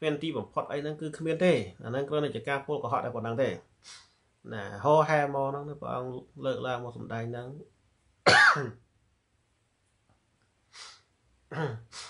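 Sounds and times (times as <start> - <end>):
man coughing: 8.2 - 8.8.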